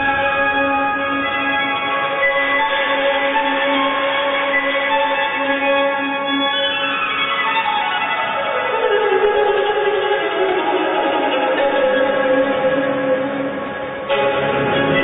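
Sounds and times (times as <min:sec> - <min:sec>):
instrumental music over sound system: 0:00.0 - 0:07.4.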